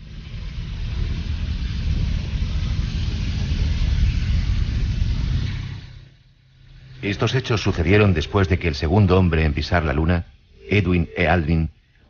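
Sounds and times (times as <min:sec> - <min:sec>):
deep steady rumbling: 0:00.0 - 0:12.0.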